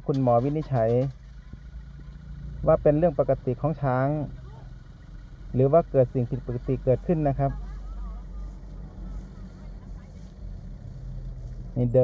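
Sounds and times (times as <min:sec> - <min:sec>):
vehicle engines idling: 0:00.0 - 0:12.0.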